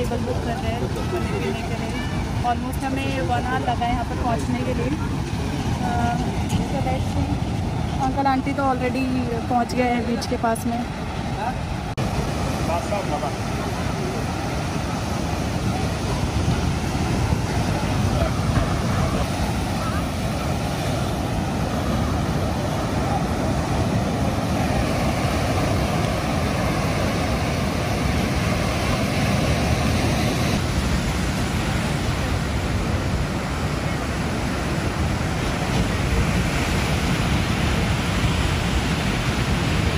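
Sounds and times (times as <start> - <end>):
ocean surf breaking: 0.0 - 39.9
wind buffeting microphone: 0.0 - 39.9.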